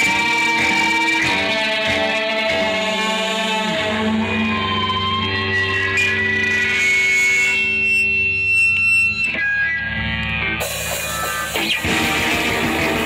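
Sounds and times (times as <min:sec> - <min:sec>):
distorted electric guitar notes: 0:00.0 - 0:13.0.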